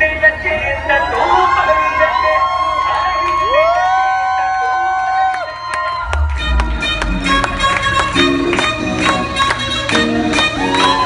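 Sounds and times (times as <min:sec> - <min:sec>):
low bass: 0:05.9 - 0:11.0.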